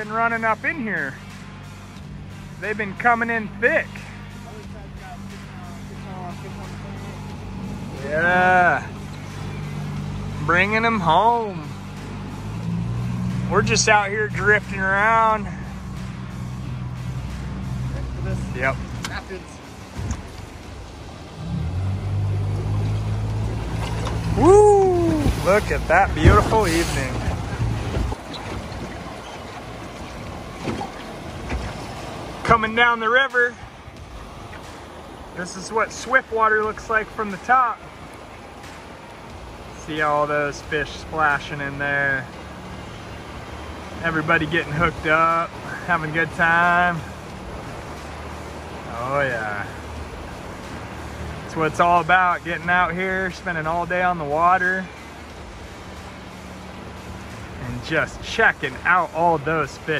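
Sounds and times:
rushing river current: 0.0s - 59.9s
wind rumbling on microphone: 22.5s - 32.3s.

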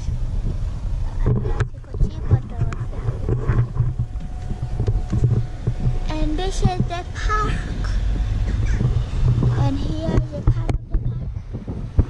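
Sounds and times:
car interior rumble: 0.0s - 12.0s.

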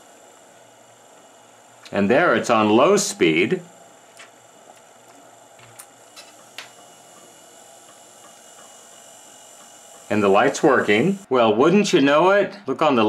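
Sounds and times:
small motor running: 0.0s - 11.3s.

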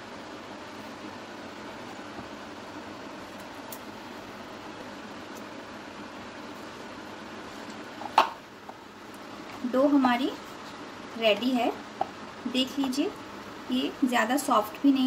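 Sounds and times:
fan-like hiss: 0.0s - 15.0s.

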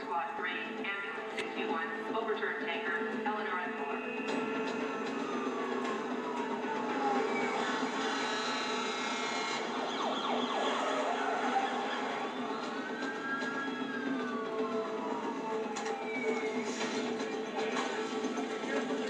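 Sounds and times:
sirens wailing: 0.0s - 19.0s.

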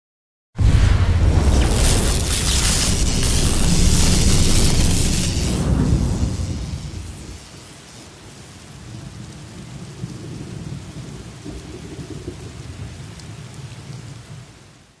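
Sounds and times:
rumbling thunder: 0.6s - 7.7s
steady rain: 0.6s - 15.0s.

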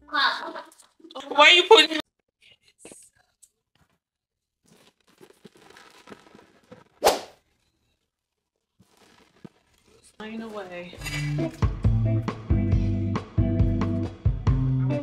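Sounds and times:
background music: 11.0s - 15.0s.

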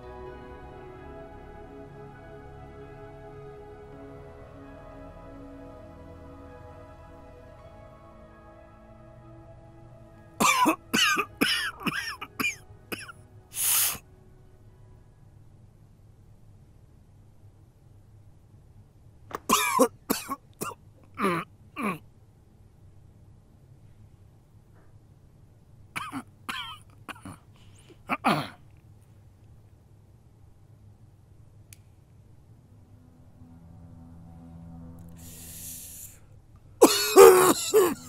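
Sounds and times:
person coughing: 10.4s - 13.2s, 19.5s - 22.0s, 26.0s - 27.5s, 28.1s - 28.6s, 36.8s - 38.0s.

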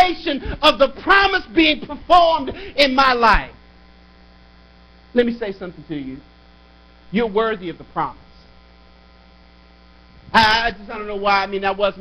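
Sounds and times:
person speaking: 0.0s - 3.6s, 5.1s - 6.3s, 7.1s - 8.6s, 10.2s - 12.0s
electrical mains hum: 0.0s - 12.0s.

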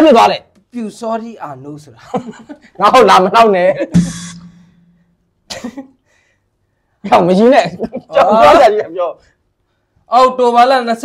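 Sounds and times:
person coughing: 5.5s - 5.9s.

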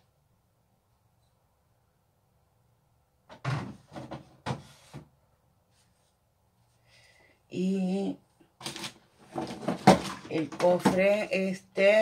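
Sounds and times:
objects rustling and clattering: 3.3s - 5.1s, 8.6s - 11.1s.

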